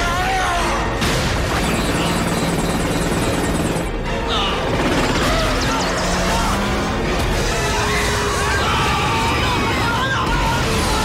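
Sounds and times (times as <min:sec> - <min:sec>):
helicopter rotor beating: 0:01.5 - 0:09.9.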